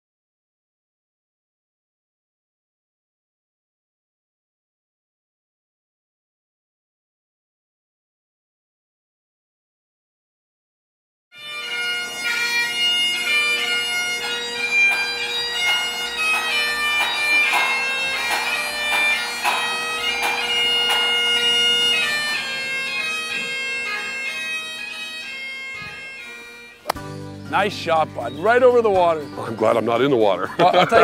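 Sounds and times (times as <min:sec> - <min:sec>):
bagpipes playing a tune: 0:11.4 - 0:31.0.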